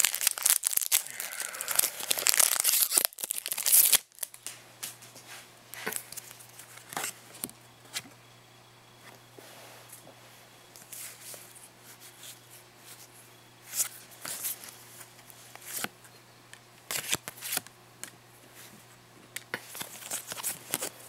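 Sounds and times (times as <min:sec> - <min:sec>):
foil wrapper tearing and crinkling: 0:00.0 - 0:04.4.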